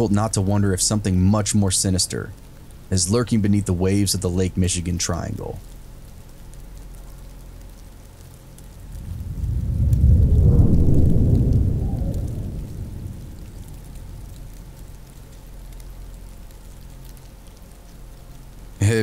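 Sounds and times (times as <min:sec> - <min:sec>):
rain: 0:00.0 - 0:19.0
rolling thunder rumble: 0:08.6 - 0:16.8.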